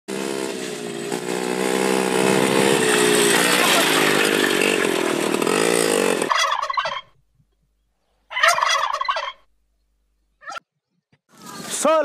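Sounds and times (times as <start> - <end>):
small motorbike engine running: 0.1 - 6.5
turkey gobbling: 6.3 - 7.2, 8.3 - 9.5.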